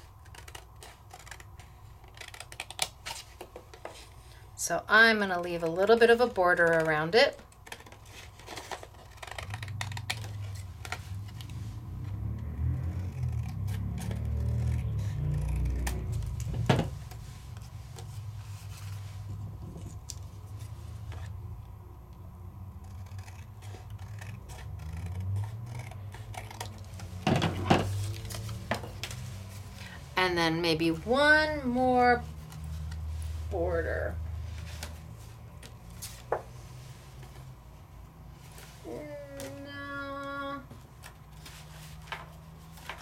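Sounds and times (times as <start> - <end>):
scissors snipping paper: 0.0 - 3.5, 6.1 - 11.6, 12.2 - 17.2, 22.7 - 27.2.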